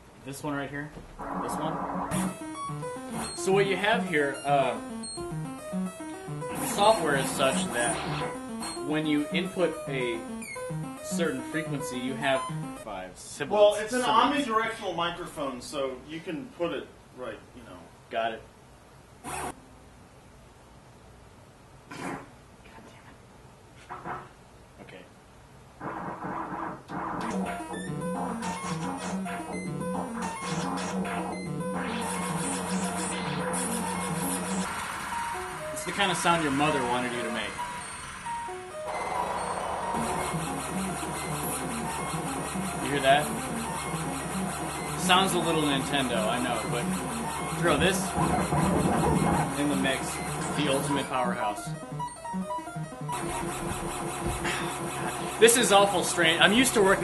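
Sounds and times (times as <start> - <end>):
burst of synthesizer noise: 1.2 - 12.8, 38.7 - 55.9
short electronic notes: 1.2 - 12.9, 27.2 - 57.0.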